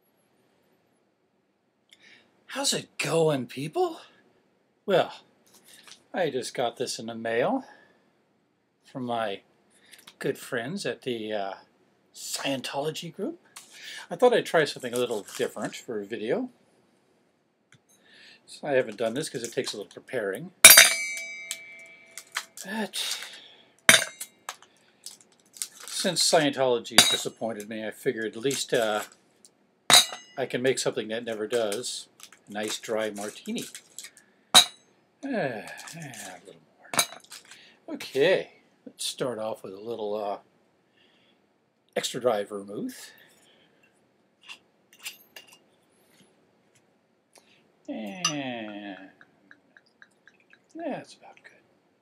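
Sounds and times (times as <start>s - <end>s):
glass clinks and light knocks: 20.7s - 22.5s, 23.9s - 24.4s, 27.0s - 27.3s, 29.9s - 30.4s, 33.6s - 34.8s, 37.0s - 37.4s, 44.5s - 45.6s, 48.2s - 50.6s
ice cubes clinking in metal shaker: 20.7s - 23.3s, 31.3s - 34.7s, 37.0s - 37.6s.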